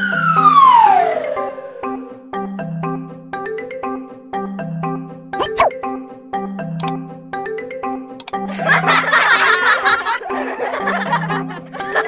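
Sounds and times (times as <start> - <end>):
light background music: 0.0 - 12.0
laughter: 8.5 - 12.0.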